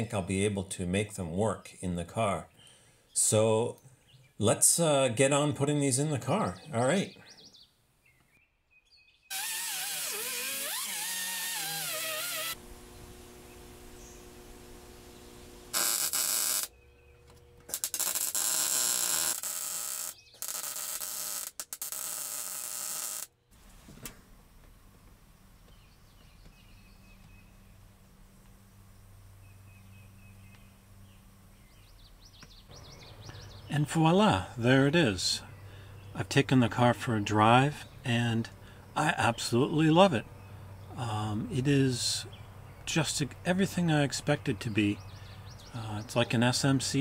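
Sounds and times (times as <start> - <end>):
arc welder crackling: 9.3 - 24.8
loud wavering whirring: 9.6 - 20.7
low steady hum: 12.5 - 19.1, 23.5 - 47.0
faint bird chirps: 29.4 - 33.8.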